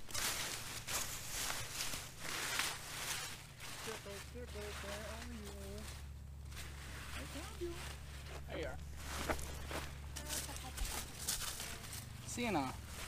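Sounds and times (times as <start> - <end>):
steady low hum: 0.0 - 13.0
vines rustling: 0.0 - 13.0.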